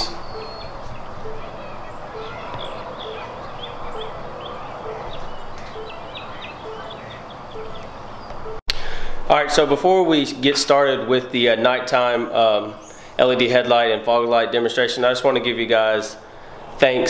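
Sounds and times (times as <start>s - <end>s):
small birds chirping: 0.0s - 8.6s, 12.6s - 13.5s.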